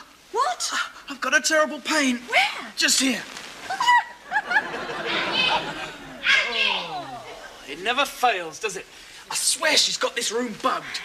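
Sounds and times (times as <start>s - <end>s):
chatter: 3.7s - 8.2s
audience laughing: 3.8s - 7.6s.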